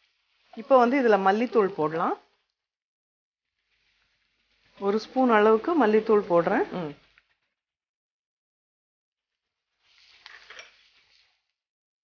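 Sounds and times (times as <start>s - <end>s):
spatula scraping frying pan: 0.0s - 0.8s, 3.4s - 6.4s, 9.3s - 11.5s.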